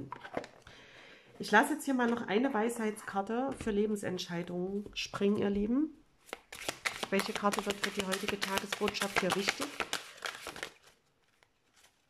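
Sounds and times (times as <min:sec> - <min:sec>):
cards being shuffled: 0:06.2 - 0:12.0.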